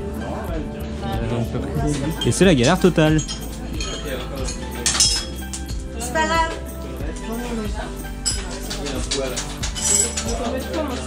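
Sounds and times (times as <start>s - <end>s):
background music: 0.0s - 11.0s
metal tubing clinking: 1.9s - 11.0s.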